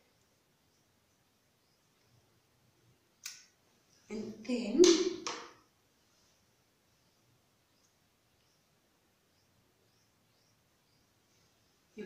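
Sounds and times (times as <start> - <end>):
woman speaking: 4.1 - 5.2.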